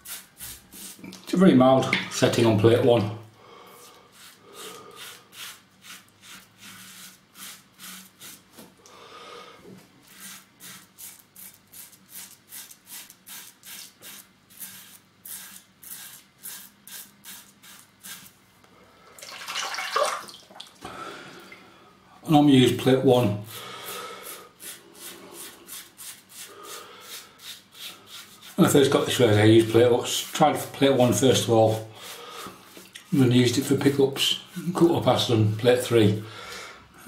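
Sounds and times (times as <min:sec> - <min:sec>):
razor scraping stubble: 0:03.8 - 0:08.4, 0:10.0 - 0:18.3, 0:23.8 - 0:36.1.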